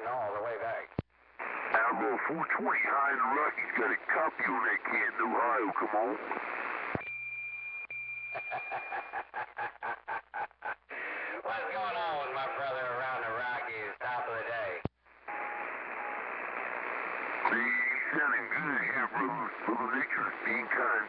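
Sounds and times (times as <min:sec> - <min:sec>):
radio hiss with faint tone: 0:00.0 - 0:07.0, 0:09.1 - 0:21.0
radio click: 0:00.9 - 0:07.0
chopped pulsing radio signal: 0:01.4 - 0:07.0, 0:15.3 - 0:21.0
distant voice through static: 0:01.5 - 0:06.4, 0:17.3 - 0:21.0.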